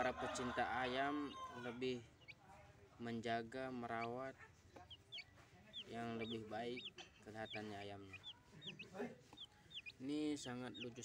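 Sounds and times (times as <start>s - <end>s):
chicks peeping: 0.0s - 2.4s, 3.5s - 11.0s.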